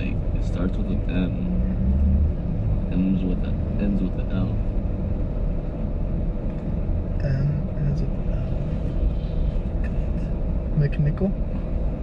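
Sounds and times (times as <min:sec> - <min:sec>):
car idling: 0:00.0 - 0:12.0.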